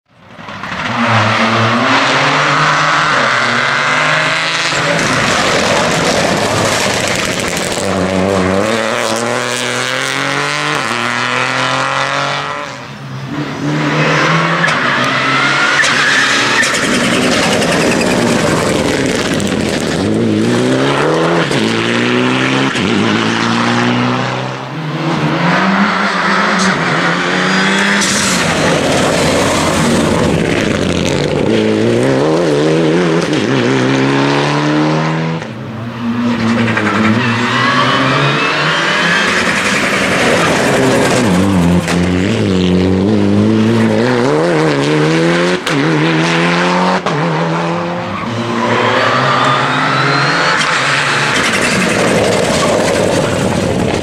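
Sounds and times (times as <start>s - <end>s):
rally car engines revving: 0.2s - 54.0s.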